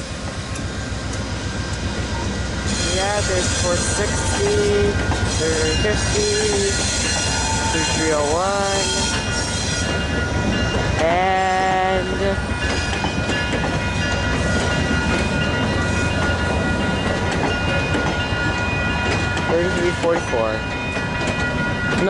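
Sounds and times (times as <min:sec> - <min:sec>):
train coaches rumbling past: 0:00.0 - 0:22.0.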